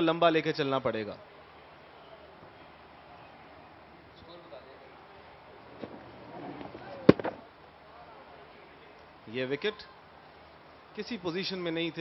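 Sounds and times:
cricket bat hitting ball: 7.0 - 7.4.

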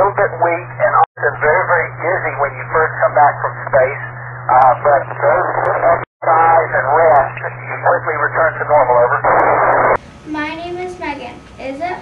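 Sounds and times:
man talking over radio: 0.0 - 10.0
radio hiss: 0.0 - 10.0
steady low hum: 0.0 - 12.0.

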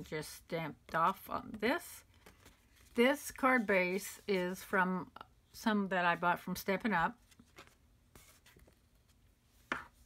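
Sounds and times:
paper card rustling: 2.0 - 4.6, 7.2 - 9.3.

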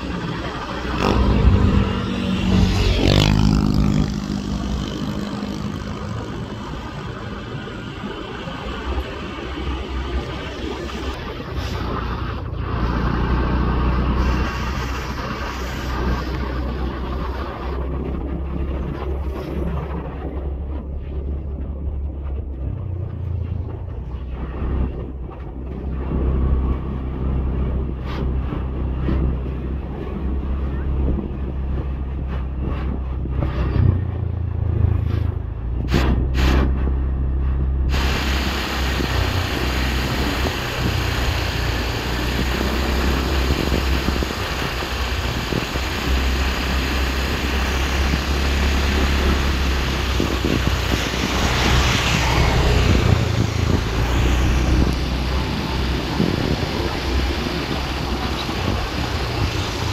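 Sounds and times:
motorcycle engine and road drone: 0.0 - 59.9
wind rushing over microphone: 0.0 - 59.9.

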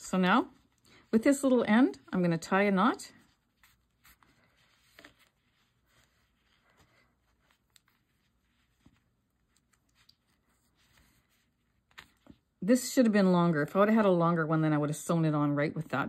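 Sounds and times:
faint rustles of yarn handling: 0.0 - 14.8.

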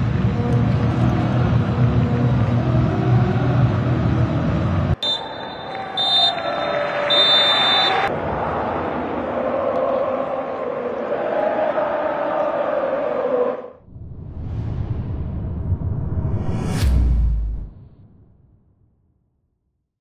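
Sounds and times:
stadium crowd noise: 0.0 - 13.8
referee's whistle blasts: 5.0 - 8.1.

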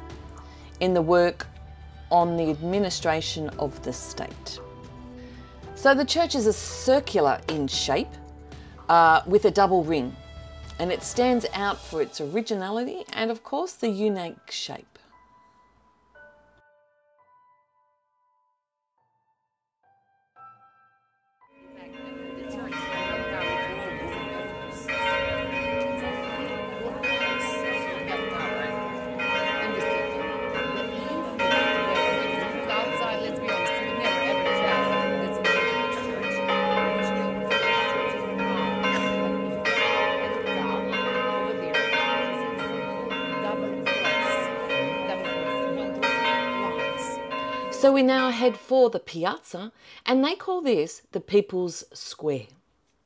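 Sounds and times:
church bells pealing: 21.6 - 48.8.

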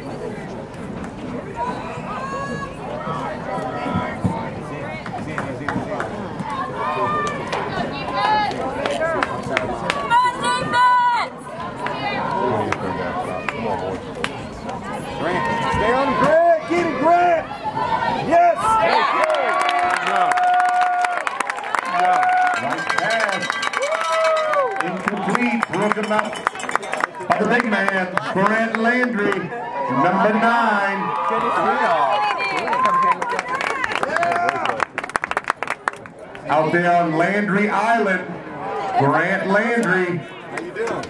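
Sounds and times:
crowd shouting and cheering: 1.2 - 35.3, 36.0 - 41.0
long drawn-out yells: 10.0 - 11.4, 15.1 - 22.9, 23.5 - 24.8.

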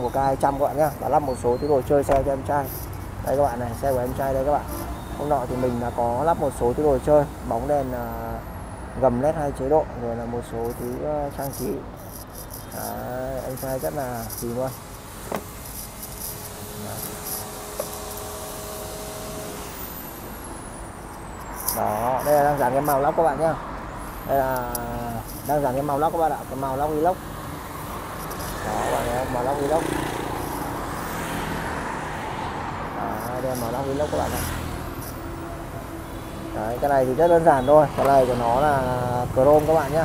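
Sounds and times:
road traffic rumble: 0.0 - 40.0.

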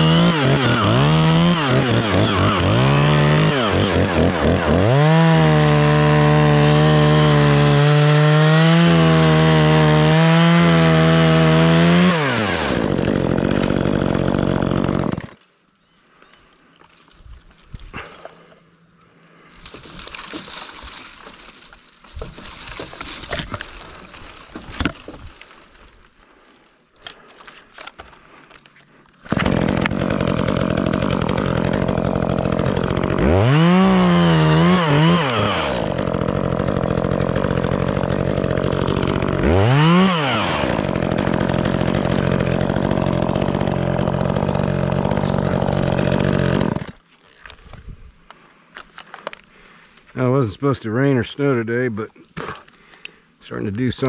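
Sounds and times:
chainsaw running and revving: 0.0 - 15.4, 29.3 - 47.0
brush rustling and snapping: 16.4 - 29.9.

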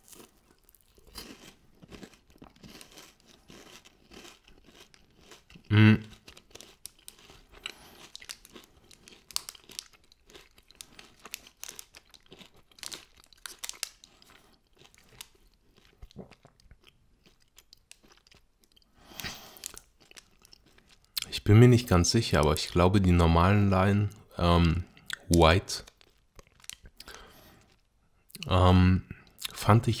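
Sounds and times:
chewing chocolate bar crunches: 0.0 - 21.4, 24.6 - 28.5.

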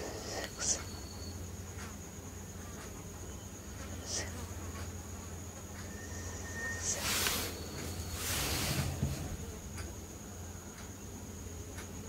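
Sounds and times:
electrical hum with high whine: 0.0 - 12.0.

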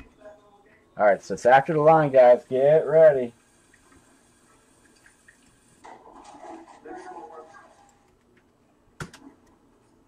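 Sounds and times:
man talking: 1.0 - 3.4.

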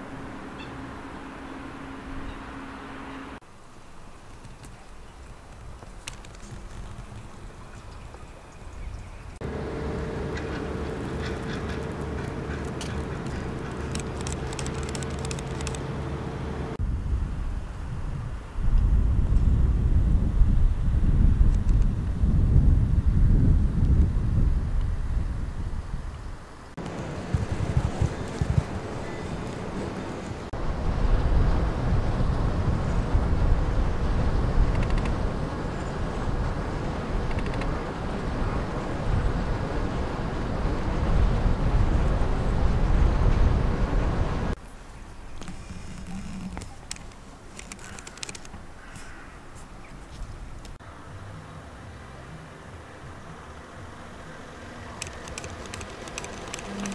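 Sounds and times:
wind buffeting microphone: 4.4 - 44.6
steady low hum: 9.3 - 21.4.

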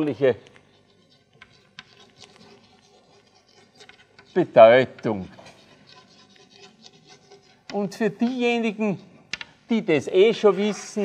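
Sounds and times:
chalk scratching on blackboard: 0.0 - 8.7, 10.0 - 11.0.

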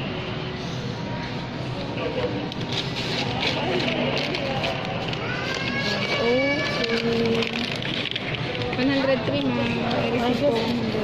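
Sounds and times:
store noise: 0.0 - 11.0.

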